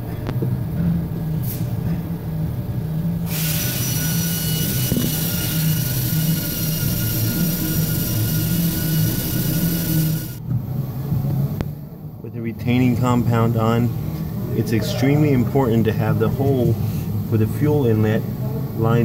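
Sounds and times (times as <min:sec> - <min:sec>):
spray jet hissing with whistle: 0:03.3 - 0:10.4.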